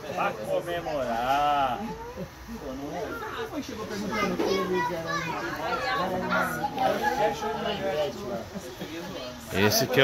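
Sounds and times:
men chattering: 0.0s - 10.0s.

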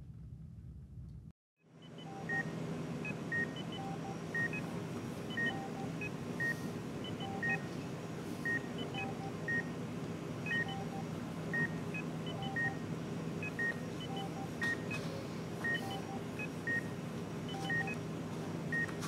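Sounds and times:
steady low hum: 0.0s - 19.0s
patient monitor beeping: 1.8s - 7.7s, 8.4s - 9.7s, 10.4s - 18.0s, 18.7s - 19.0s.

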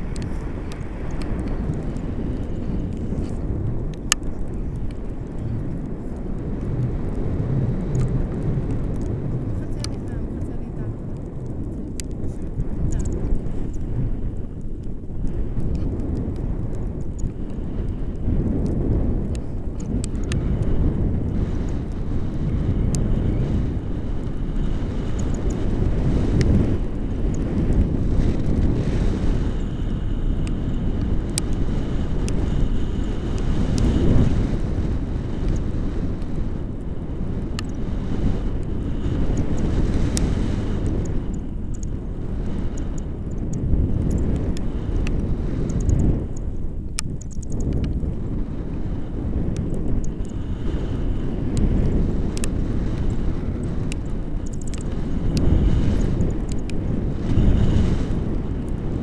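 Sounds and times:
faint ticks: 0.0s - 59.0s
wind buffeting microphone: 0.0s - 59.0s.

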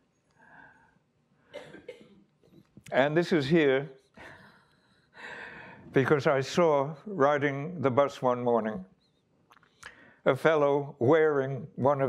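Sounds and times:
man breathing into microphone: 5.2s - 5.9s.

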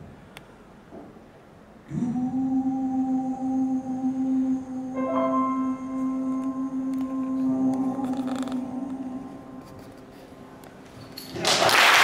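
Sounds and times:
man singing a long note: 1.9s - 9.9s
held keyboard chord: 4.8s - 11.2s.

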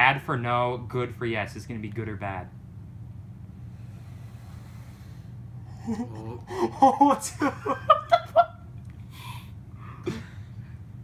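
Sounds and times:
low steady hum: 0.0s - 11.0s
person gasping: 5.7s - 6.8s, 9.1s - 10.3s.

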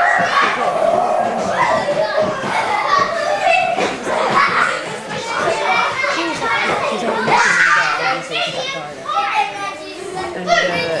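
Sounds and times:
young children talking and calling out: 0.0s - 11.0s.

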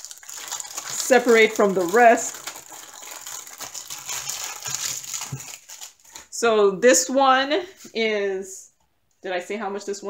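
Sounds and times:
plastic bag crinkling: 0.0s - 6.4s.

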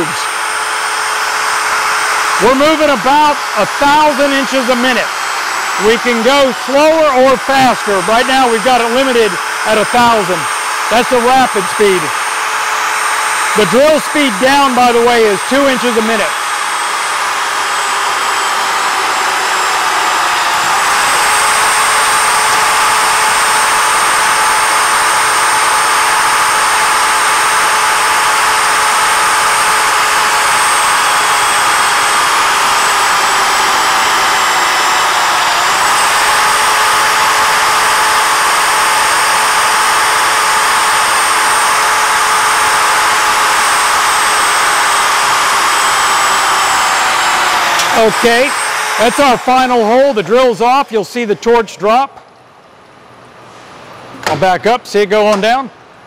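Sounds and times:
electric drill whining: 0.0s - 51.3s.

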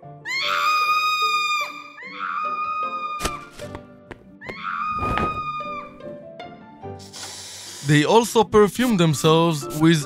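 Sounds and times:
woman screaming: 0.2s - 3.5s, 4.4s - 6.0s.

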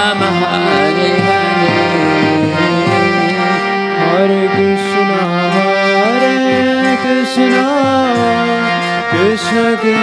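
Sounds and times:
devotional singing: 0.0s - 10.0s
harmonium drone: 0.0s - 10.0s.

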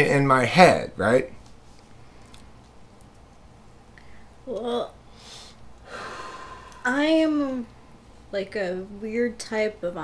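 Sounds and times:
man breathing: 5.1s - 6.9s.

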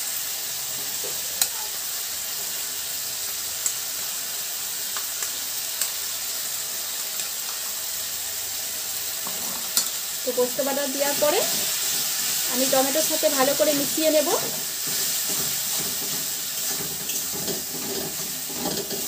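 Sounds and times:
tomatoes sizzling in oil: 0.0s - 19.0s.

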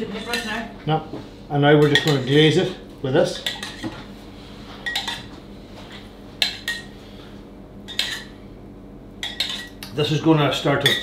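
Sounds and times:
metal spoon clinking on saucepan: 9.2s - 9.8s.

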